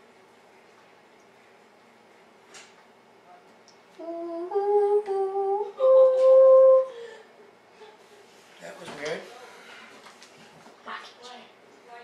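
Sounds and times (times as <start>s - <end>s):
person humming: 4.0s - 7.3s.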